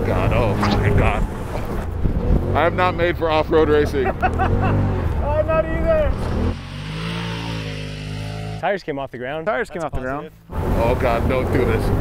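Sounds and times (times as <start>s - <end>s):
wind rushing inside cab: 0.0s - 3.0s
engine running: 0.0s - 8.6s.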